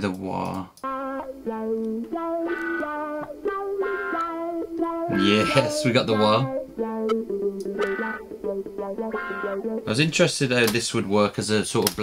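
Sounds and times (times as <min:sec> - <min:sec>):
plucked guitar with wah effect: 0:00.8 - 0:10.0.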